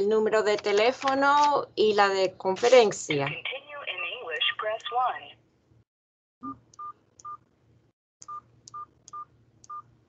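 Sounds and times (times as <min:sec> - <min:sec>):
keypad beeps: 0:08.2 - 0:09.9.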